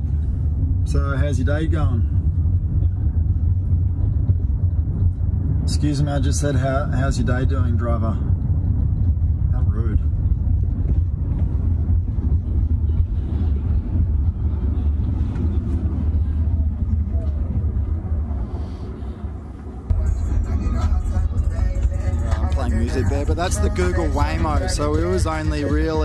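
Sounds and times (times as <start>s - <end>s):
car cabin road rumble: 0.0s - 26.0s
music playing in car: 19.9s - 26.0s.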